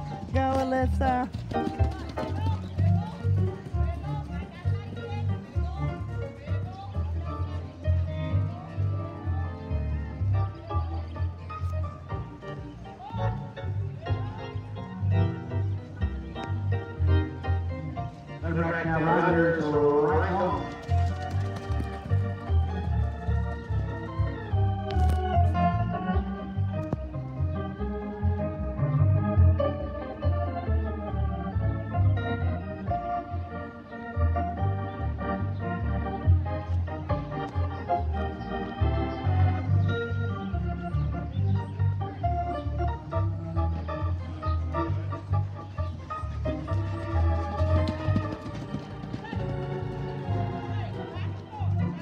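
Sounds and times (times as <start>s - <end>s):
country music with plucked guitar: 0.0s - 52.0s.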